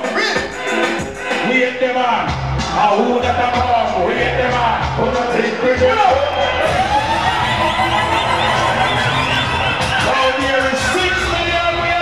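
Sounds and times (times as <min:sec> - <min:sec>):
loud dancehall music: 0:00.0 - 0:12.0
crowd cheering and shouting: 0:01.5 - 0:12.0.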